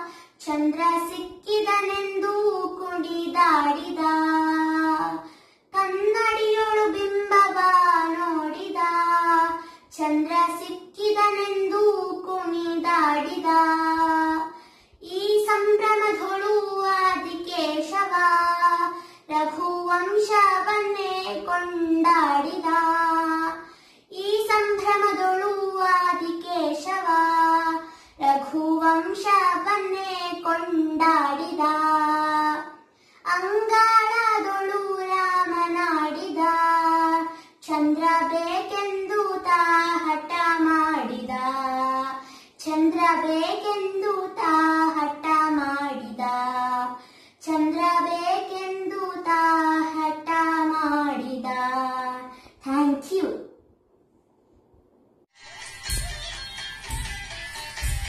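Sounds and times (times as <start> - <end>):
girl singing unaccompanied: 0.0 - 53.5.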